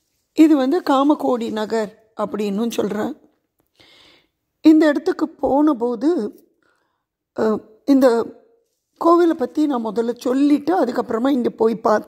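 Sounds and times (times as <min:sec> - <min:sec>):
woman speaking: 0:00.4 - 0:03.3, 0:04.6 - 0:06.4, 0:07.4 - 0:08.4, 0:09.0 - 0:12.0.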